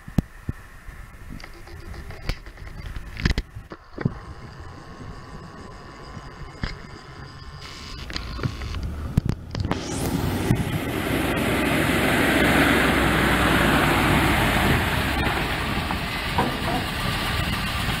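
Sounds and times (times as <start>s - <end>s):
tires crunching on gravel: 1.8s - 18.0s
truck engine running: 2.2s - 18.0s
sharp clicks: 7.6s - 10.6s.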